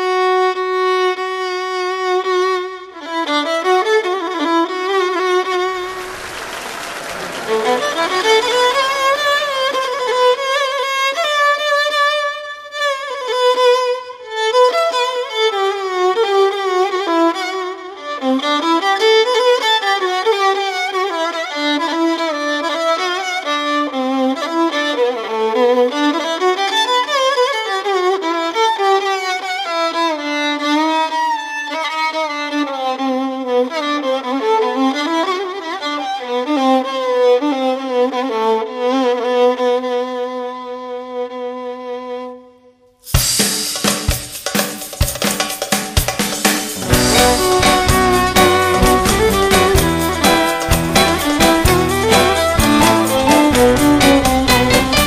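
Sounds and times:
violin melody with slides: 0:03.3 - 0:39.2, 0:46.8 - 0:55.0.

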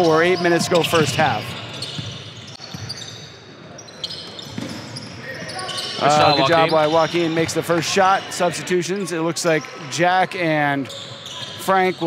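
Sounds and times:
murmur of voices: 0:05.2 - 0:12.0.

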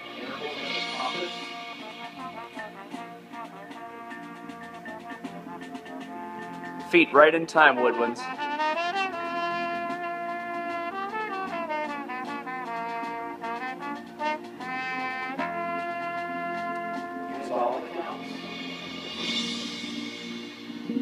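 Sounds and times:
ringing percussion shimmer: 0:00.0 - 0:02.8
marching band brass: 0:00.0 - 0:21.0.

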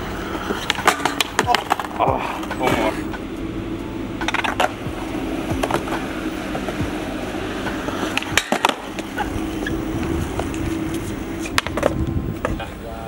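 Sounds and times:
skateboard clacks: 0:00.0 - 0:03.2, 0:04.2 - 0:12.7
skateboard wheels rolling on concrete: 0:00.0 - 0:13.0.

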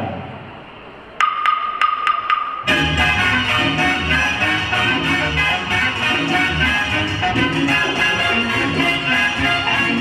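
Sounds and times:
wood block strikes: 0:01.2 - 0:02.7.

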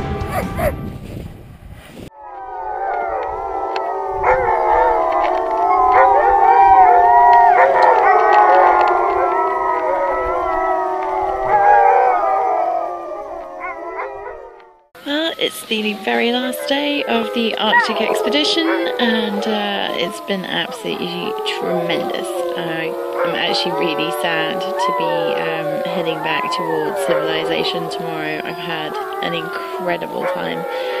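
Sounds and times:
dogs howling in chorus: 0:02.2 - 0:31.0.

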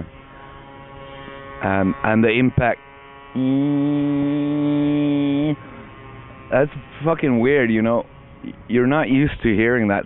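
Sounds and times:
motor scooter engine passing: 0:00.0 - 0:10.0.

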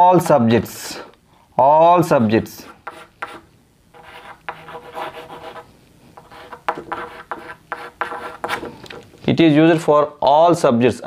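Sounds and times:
chalk scratching on blackboard: 0:02.2 - 0:08.7, 0:09.7 - 0:10.0.

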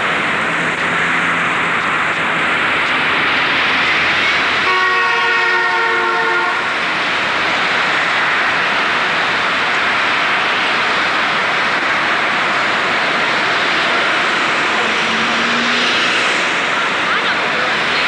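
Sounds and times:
street traffic roar: 0:00.0 - 0:18.0
vehicle horn chord: 0:04.7 - 0:06.6.

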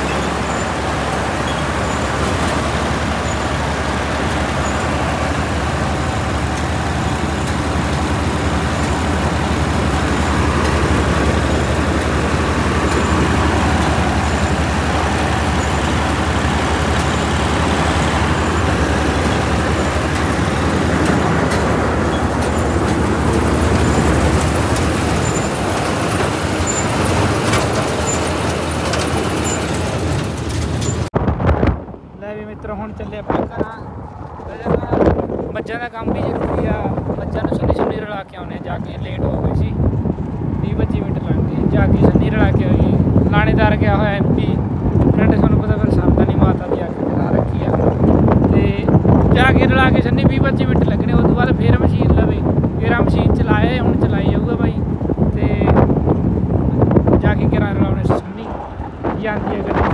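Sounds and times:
combine harvester running: 0:00.0 - 0:59.9.

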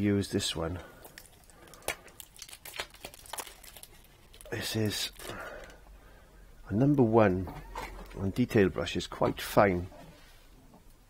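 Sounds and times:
paper sleeve crinkling: 0:01.0 - 0:05.8.

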